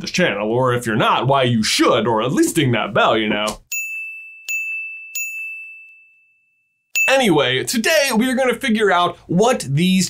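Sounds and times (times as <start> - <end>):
high bell dinging: 3.7 - 7.6.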